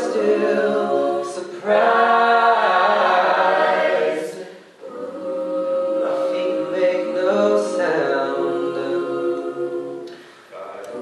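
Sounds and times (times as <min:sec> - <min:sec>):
a cappella group singing: 0:00.0 - 0:11.0.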